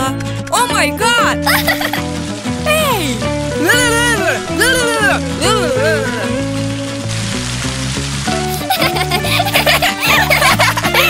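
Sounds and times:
cartoon background music: 0:00.0 - 0:11.0
hiss of spraying water: 0:01.3 - 0:11.0
child giggling: 0:01.4 - 0:02.0, 0:08.5 - 0:11.0.

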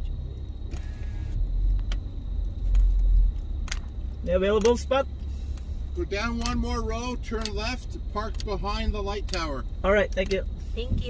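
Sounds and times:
car engine and tyres rumbling: 0:00.0 - 0:11.0.

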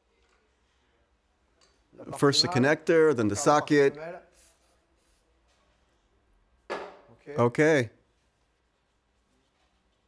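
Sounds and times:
man speaking: 0:02.0 - 0:04.4, 0:07.2 - 0:08.0.

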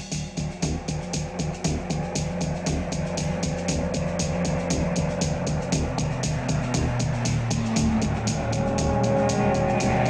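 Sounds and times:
film score music: 0:00.0 - 0:10.0
quick steady drum beat: 0:00.0 - 0:10.0
sustained low tones: 0:00.0 - 0:10.0.

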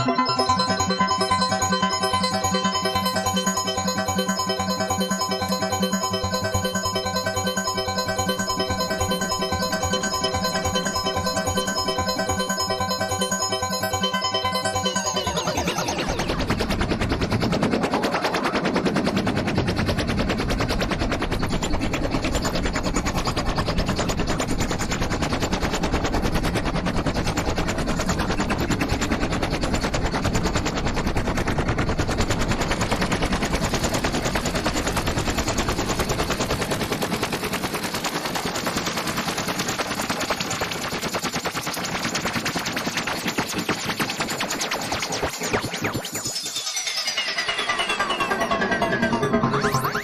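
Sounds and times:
synthesizer rapid clicking pulse: 0:00.0 - 0:50.0.

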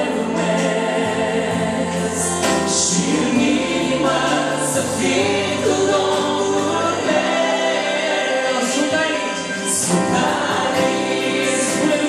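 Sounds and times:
instrumental accompaniment: 0:00.0 - 0:12.0.

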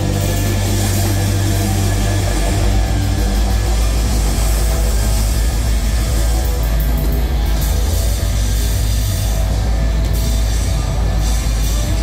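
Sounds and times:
distorted guitar and bass drone: 0:00.0 - 0:12.0
rock band playing loud: 0:00.0 - 0:12.0.

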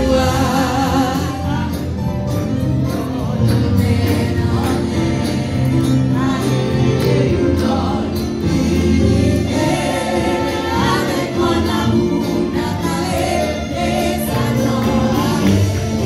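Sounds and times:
congregation and choir singing: 0:00.0 - 0:16.0.

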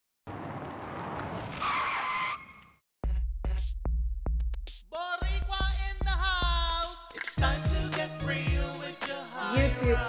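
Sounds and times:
tyre skid squeal: 0:01.4 - 0:02.8.

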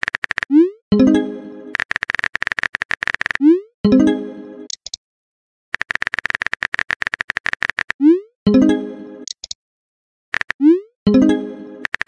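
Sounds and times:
screen taps: 0:01.7 - 0:03.5, 0:04.7 - 0:05.0, 0:05.8 - 0:08.6, 0:09.2 - 0:09.6.

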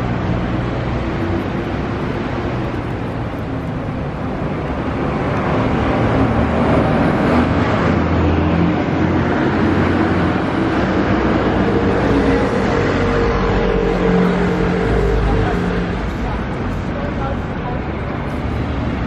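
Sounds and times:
passing car engines and tyre noise: 0:00.0 - 0:19.0.

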